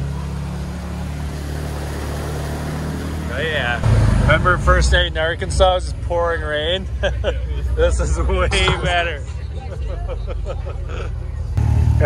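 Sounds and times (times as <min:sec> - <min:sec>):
engine droning steadily: 0:00.0 - 0:12.0.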